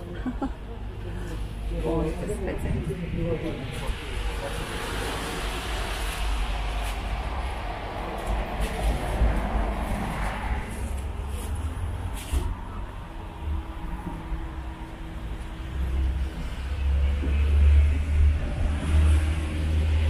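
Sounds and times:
low traffic rumble: 0.0 - 20.0
vehicle passing: 1.8 - 20.0.

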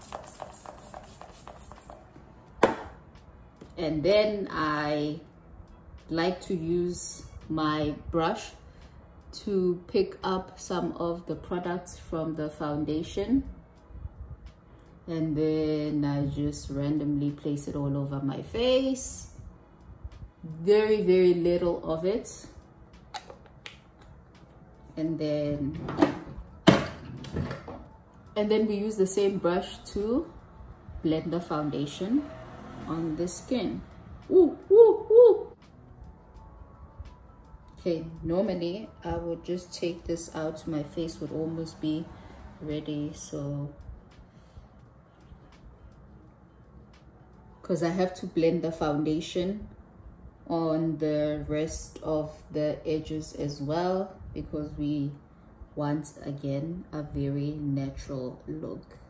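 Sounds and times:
mist spray bottle spritzes: 0.0 - 2.0
hard objects knocking: 2.6 - 3.0.

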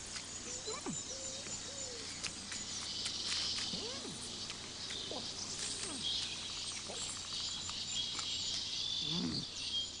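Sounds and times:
birds chirping: 0.0 - 10.0
insects chirring: 0.0 - 10.0.

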